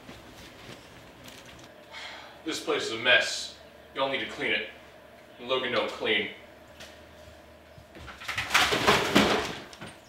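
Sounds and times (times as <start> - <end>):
items clattering off countertop: 8.0 - 10.0.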